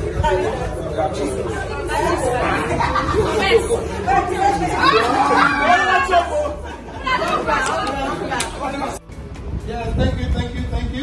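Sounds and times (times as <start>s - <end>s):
people chattering and calling out: 0.0s - 11.0s.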